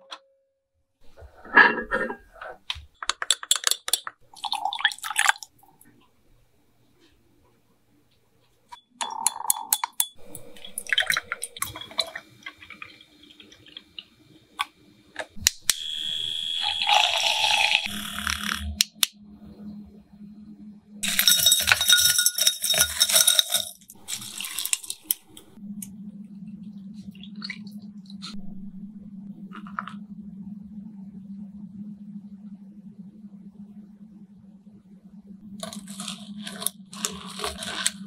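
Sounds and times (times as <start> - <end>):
liquid pouring into glass: 4.3 - 5.5
milk frother motor humming: 15.4 - 18.9
glass clinks: 21.0 - 23.8.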